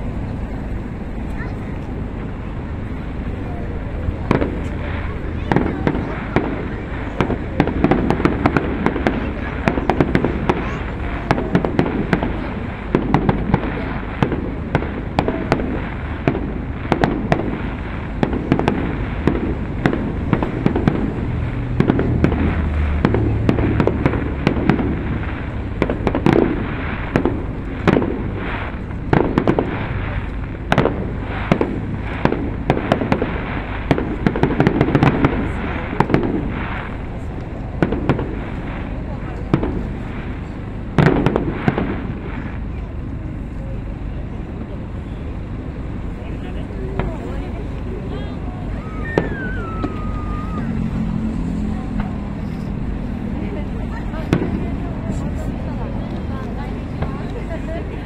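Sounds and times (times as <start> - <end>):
fireworks bursting and crackling: 0.0 - 58.0
murmur of voices: 0.0 - 58.0.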